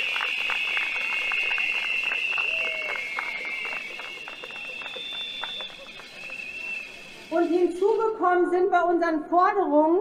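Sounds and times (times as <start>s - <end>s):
crowd applause: 0.0s - 8.0s.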